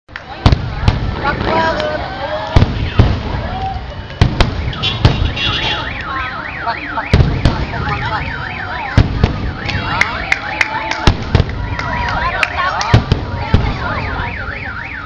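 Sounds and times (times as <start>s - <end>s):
alarm wailing: 4.6s - 11.0s.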